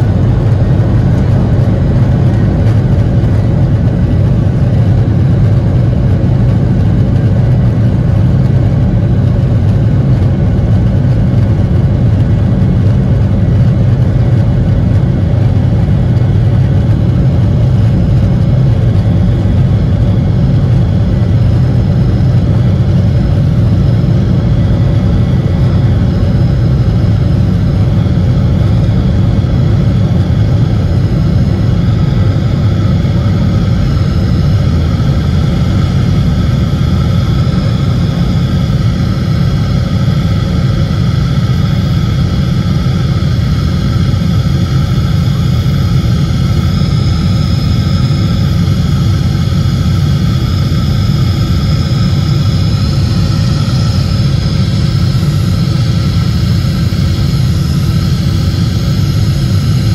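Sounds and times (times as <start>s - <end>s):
jet engine whine: 0.0s - 59.9s
jet engines rumbling in cabin: 0.0s - 59.9s.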